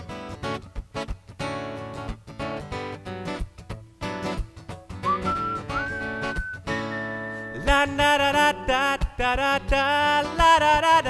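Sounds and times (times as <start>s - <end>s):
acoustic guitar strumming: 0.1s - 11.0s
whistled melody: 5.0s - 7.9s.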